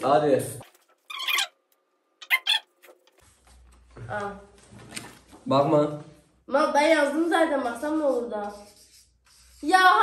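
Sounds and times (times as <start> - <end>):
felt-tip marker squeaking on paper: 2.2 - 2.7, 8.4 - 9.8.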